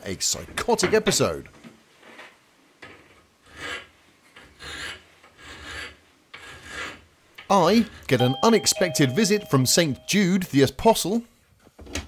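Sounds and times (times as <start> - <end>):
hand file on metal: 2.8 - 8.1.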